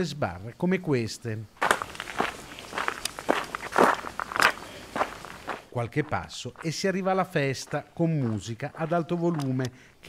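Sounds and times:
footsteps on gravel: 0:01.6 - 0:09.7.

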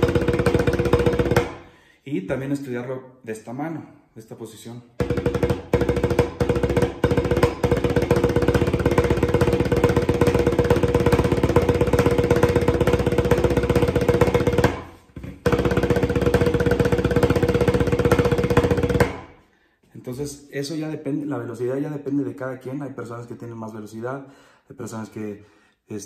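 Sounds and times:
snare drum roll: 0:00.0 - 0:01.6, 0:05.0 - 0:19.4.

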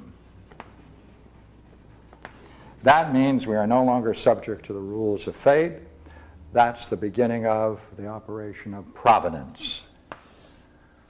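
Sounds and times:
chalk tapping on board: 0:00.0 - 0:02.5
chalk drawing on chalkboard: 0:00.0 - 0:02.9
man speaking: 0:02.8 - 0:05.9, 0:06.5 - 0:09.9.

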